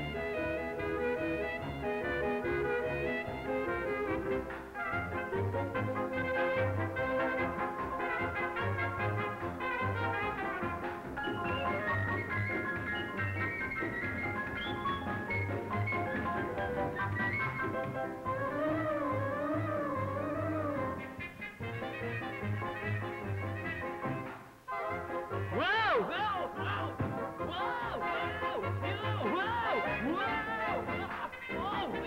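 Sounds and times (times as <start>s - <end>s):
brassy orchestral cartoon music: 0.0s - 32.0s.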